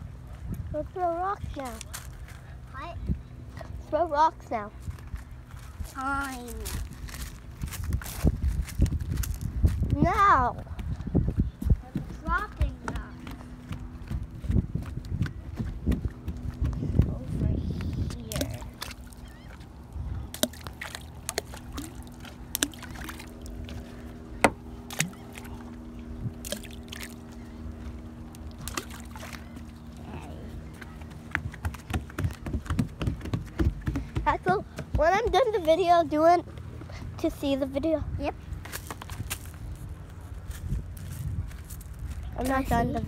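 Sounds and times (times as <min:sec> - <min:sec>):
steady low hum: 0:00.0 - 0:43.0
water sloshing against dock: 0:10.0 - 0:41.0
rocks splashing into water: 0:20.3 - 0:23.8, 0:26.4 - 0:27.2, 0:28.5 - 0:29.6.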